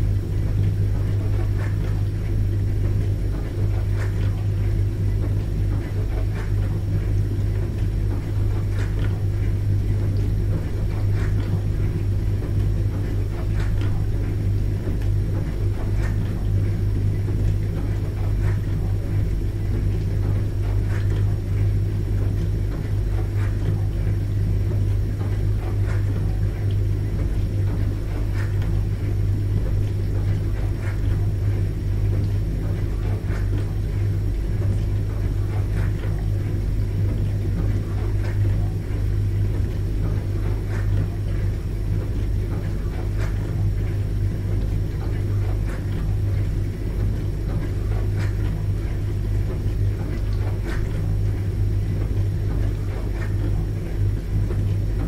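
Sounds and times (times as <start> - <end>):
dishwasher humming: 0.0 - 55.0.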